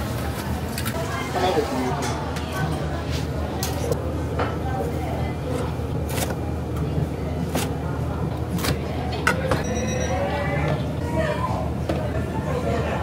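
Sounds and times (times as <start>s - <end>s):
kitchen hum: 0.0s - 13.0s.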